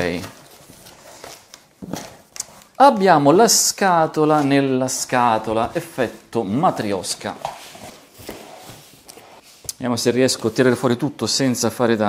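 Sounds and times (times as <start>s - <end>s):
cardboard flaps scraping and rustling: 6.9s - 9.6s.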